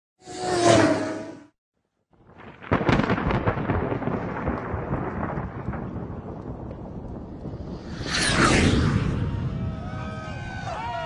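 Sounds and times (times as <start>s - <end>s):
crackling rumble: 2.1s - 10.5s
loud crash: 7.6s - 10.6s.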